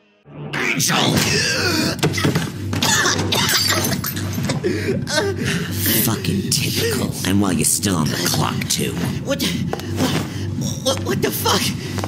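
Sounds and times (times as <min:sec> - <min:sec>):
pulsing low bass: 0:03.7 - 0:12.0.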